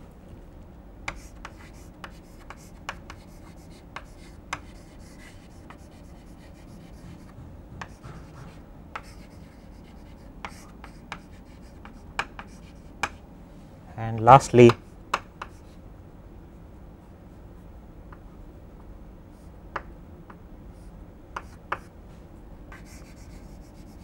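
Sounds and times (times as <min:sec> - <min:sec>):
low room hum: 0:00.0 - 0:24.0
chalk tapping and scratching: 0:01.1 - 0:13.2, 0:14.7 - 0:15.8, 0:21.4 - 0:21.9, 0:22.7 - 0:24.0.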